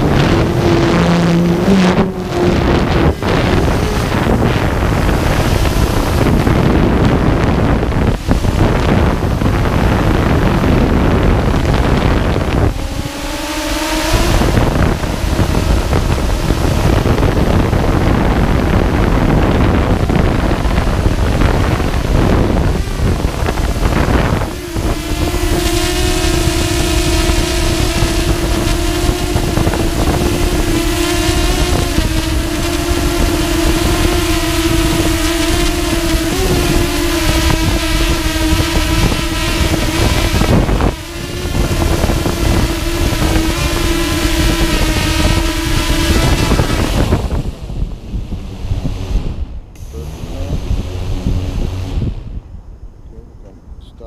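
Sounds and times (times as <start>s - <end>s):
drone motors humming: 0.0s - 54.0s
wind rush on microphone: 0.0s - 54.0s.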